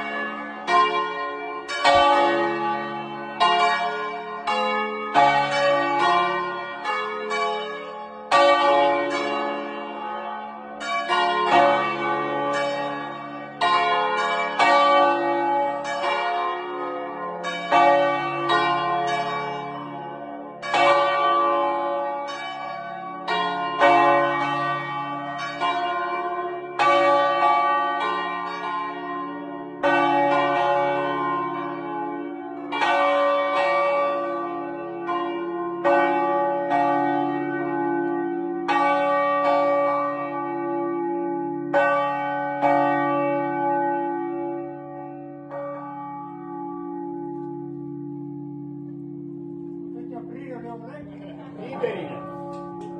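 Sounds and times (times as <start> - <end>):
church bells ringing: 0.0 - 52.9.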